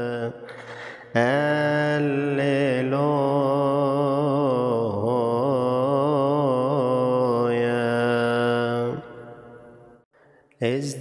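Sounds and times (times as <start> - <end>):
man chanting long aah: 10.6 - 11.0.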